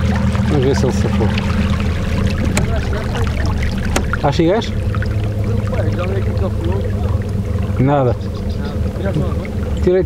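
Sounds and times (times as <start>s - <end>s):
steady low drone: 0.0s - 10.0s
water washing along hull: 0.0s - 10.0s.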